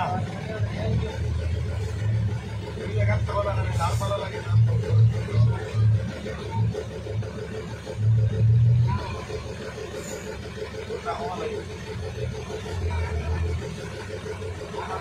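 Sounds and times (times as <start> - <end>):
indistinct voices: 0.0 - 15.0
vehicle engine rumbling: 0.0 - 15.0.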